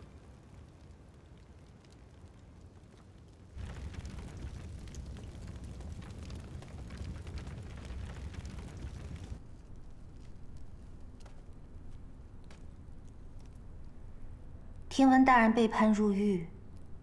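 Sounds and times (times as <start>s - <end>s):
fire crackling and popping: 0.0s - 15.3s, 16.6s - 17.0s.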